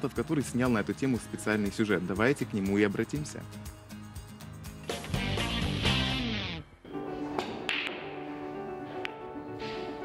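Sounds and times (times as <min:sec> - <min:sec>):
background music sustained tones: 0:00.0 - 0:10.0
snooker balls clicking: 0:07.2 - 0:09.3.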